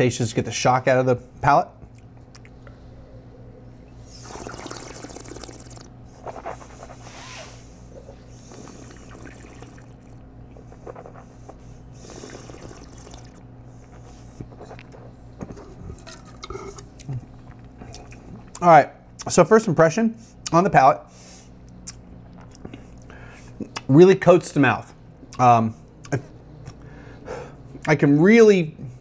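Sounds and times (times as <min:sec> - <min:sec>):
slurping air through wine: 0:04.1 - 0:07.6, 0:08.4 - 0:10.0, 0:12.0 - 0:13.4
wine swishing in mouth: 0:04.2 - 0:07.6.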